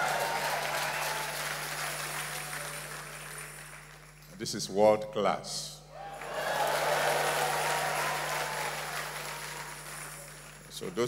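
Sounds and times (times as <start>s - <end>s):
congregation applauding: 0.0s - 4.4s, 6.0s - 11.0s.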